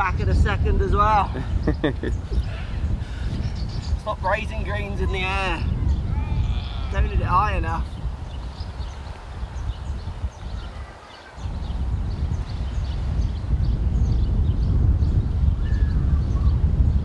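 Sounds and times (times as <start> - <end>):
wind buffeting microphone: 0.0 - 17.0
small birds chirping: 0.1 - 17.0.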